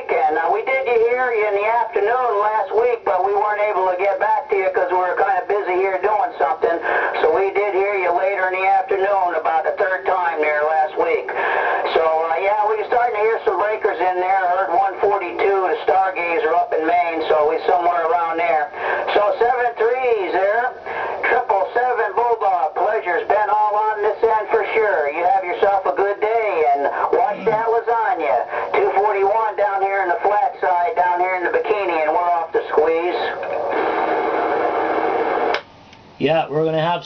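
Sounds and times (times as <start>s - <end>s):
voice over radio speaker: 0.0s - 34.0s
steady radio tone: 0.0s - 35.5s.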